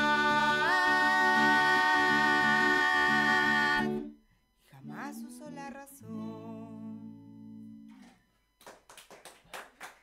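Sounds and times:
acoustic guitar chord: 0.0 - 8.1
rapid hand clapping: 8.6 - 10.0.

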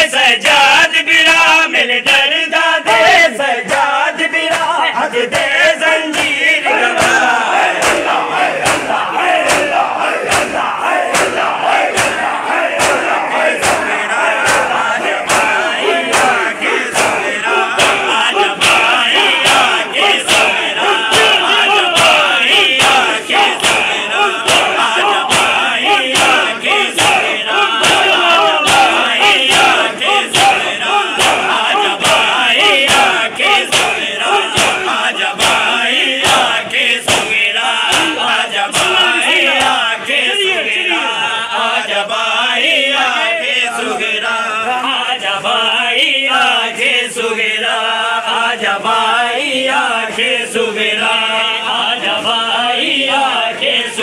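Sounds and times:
crowd shouting and chanting: 0.0 - 54.0
hands slapping chests: 6.1 - 39.9.

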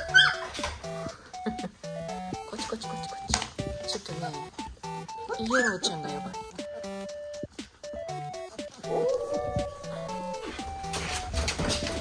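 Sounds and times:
plucked background music: 0.0 - 12.0
puppy howling cry: 8.8 - 10.6.

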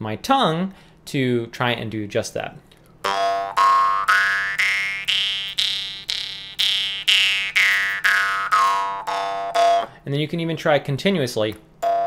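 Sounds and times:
jaw harp drone: 3.0 - 10.0.

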